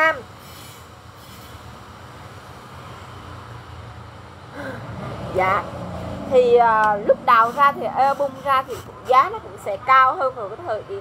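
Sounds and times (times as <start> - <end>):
faint hiss: 0.2 - 2.6.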